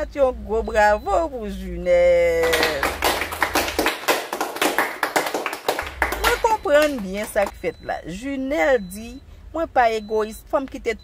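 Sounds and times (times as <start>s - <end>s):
hands clapping in applause: 2.4s - 7.5s.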